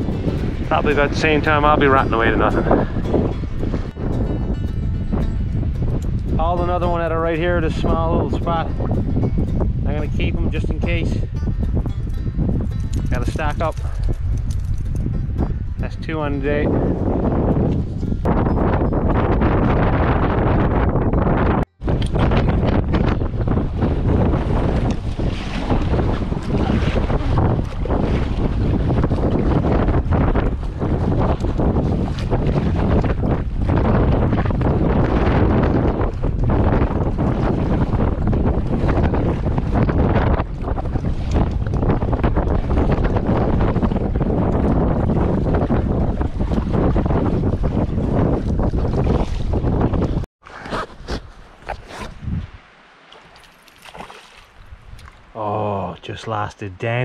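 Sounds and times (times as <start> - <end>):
wind buffeting microphone: 0.0 - 52.7, 53.4 - 56.2
water slapping against raft: 21.8 - 55.4.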